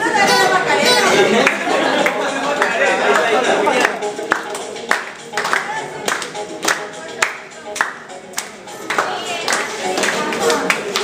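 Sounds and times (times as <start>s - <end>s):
many voices singing and calling: 0.0s - 4.8s, 5.7s - 11.0s
group clapping in a steady beat: 1.3s - 11.0s.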